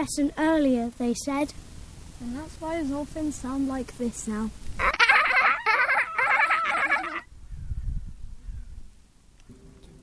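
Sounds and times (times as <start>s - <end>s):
child imitating dolphin squeals: 4.8s - 7.3s.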